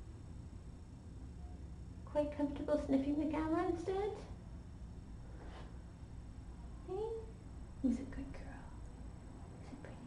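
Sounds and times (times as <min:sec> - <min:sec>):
quiet steady room hum: 0:00.0 - 0:10.0.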